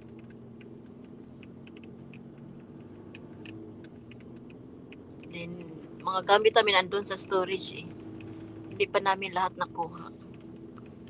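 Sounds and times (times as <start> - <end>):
car engine and tyres hum: 0.0 - 11.0.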